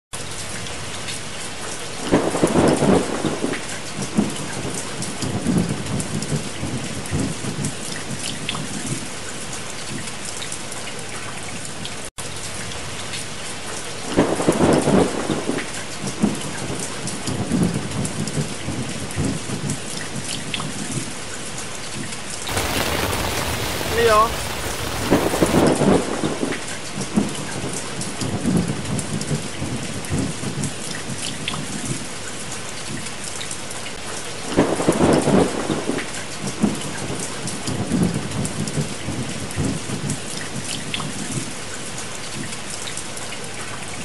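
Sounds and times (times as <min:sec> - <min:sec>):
rain on a tent: 0:00.2 - 0:44.0
thunder rolling: 0:22.5 - 0:25.8.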